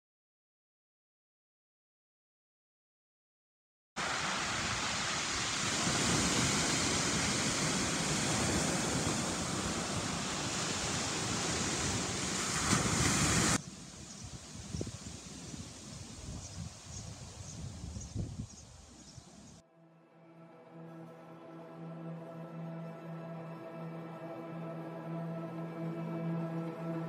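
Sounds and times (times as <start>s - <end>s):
waves washing over pebbles: 4.0s - 14.0s.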